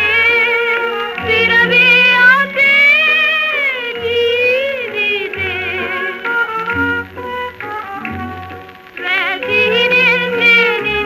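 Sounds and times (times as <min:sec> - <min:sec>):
woman singing a film song: 0:00.0 - 0:11.0.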